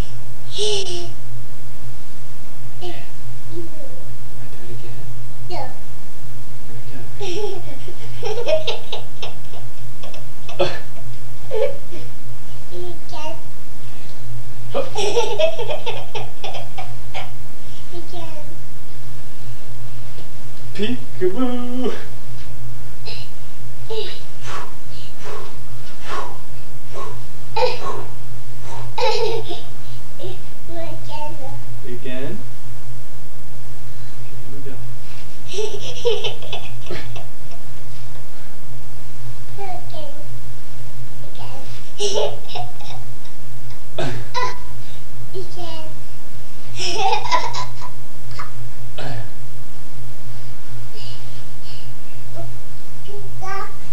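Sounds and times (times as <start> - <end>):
low electrical hum: 0.0 - 53.9
toddler laughing: 0.5 - 1.2, 7.2 - 10.8, 11.5 - 12.0, 14.8 - 17.4, 23.9 - 24.2, 27.6 - 28.1, 28.9 - 31.3, 35.5 - 37.3, 41.3 - 43.1, 44.3 - 44.8, 46.8 - 48.6.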